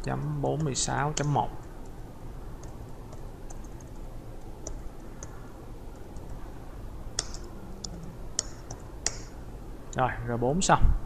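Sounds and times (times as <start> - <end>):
low background hum: 0.0 - 11.0
keyboard key clicks: 7.2 - 9.3.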